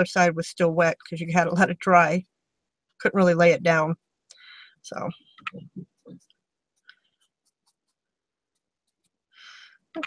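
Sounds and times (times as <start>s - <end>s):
paintbrush scratching on fabric: 5.9s - 9.3s.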